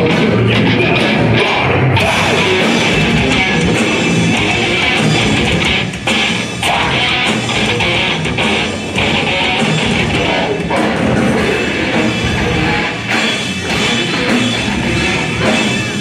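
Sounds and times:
drums: 0.0s - 16.0s
electric guitar riffing: 0.0s - 16.0s.

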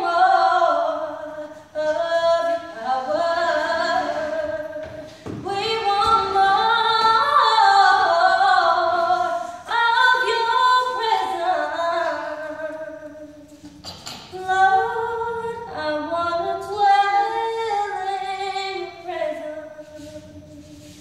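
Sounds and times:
women singing a cappella: 0.0s - 21.0s.

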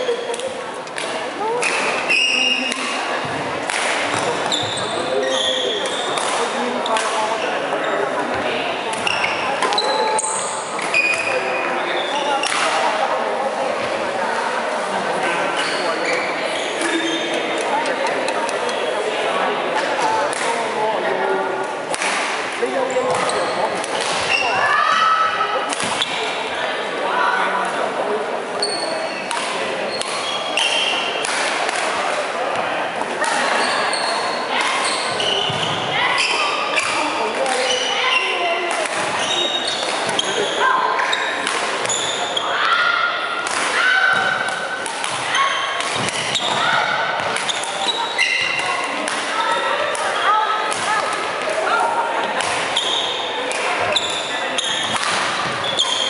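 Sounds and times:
voices chattering: 0.0s - 56.0s
rackets striking shuttlecock: 0.3s - 4.7s, 5.8s - 7.4s, 12.4s - 12.9s, 20.3s - 20.7s, 21.9s - 22.5s, 23.1s - 24.4s, 25.7s - 26.2s, 29.3s - 32.3s, 38.7s - 40.4s, 41.3s - 42.3s, 43.4s - 46.6s, 47.2s - 49.3s, 52.2s - 52.9s, 53.5s - 56.0s
shoes squeaking on floor: 1.6s - 3.3s, 4.1s - 8.1s, 9.0s - 12.5s, 15.4s - 17.5s, 22.8s - 25.0s, 28.6s - 31.2s, 33.4s - 42.8s, 45.3s - 50.4s, 52.7s - 56.0s.

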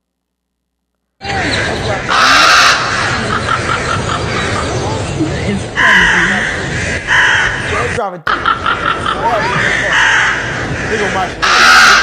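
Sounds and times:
flock of birds calling: 1.2s - 12.0s.

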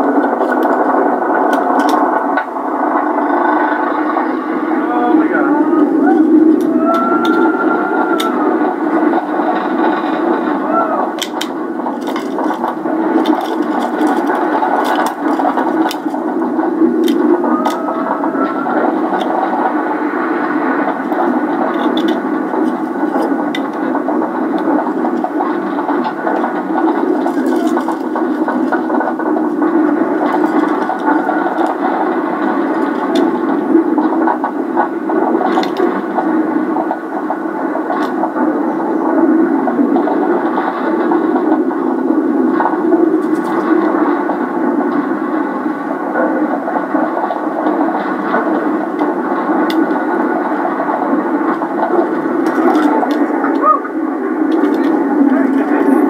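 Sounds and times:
roller coaster rumbling rattle: 0.0s - 56.0s.

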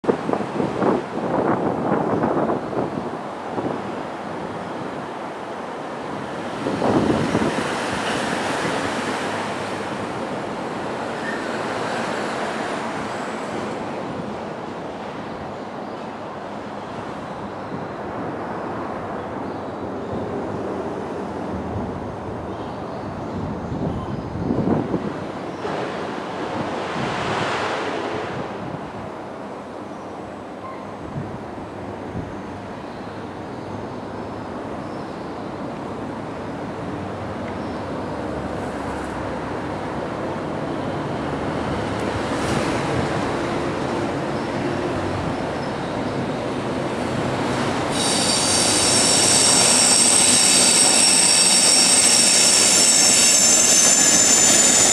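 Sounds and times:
wind buffeting microphone: 6.1s - 9.0s, 23.2s - 29.2s.

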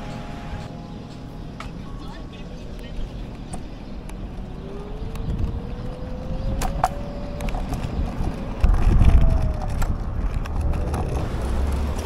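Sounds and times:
scooter wheels rumbling on pavement: 1.7s - 12.0s
wind on microphone: 4.3s - 12.0s.

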